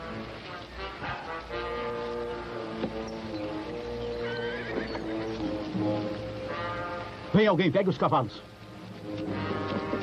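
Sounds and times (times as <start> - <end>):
background music with held notes: 0.0 - 10.0
horse whinnying: 3.8 - 5.4.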